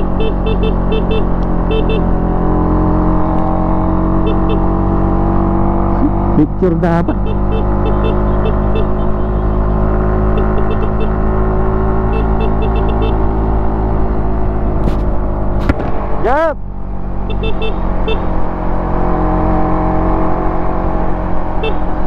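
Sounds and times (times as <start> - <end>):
engine revving: 0.0 - 22.0
motorcycle engine cruising: 0.0 - 22.0.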